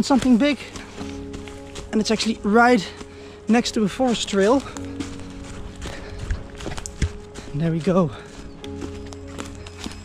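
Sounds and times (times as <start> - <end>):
background music with held notes: 0.0 - 10.0
running footsteps on leaves: 0.0 - 10.0.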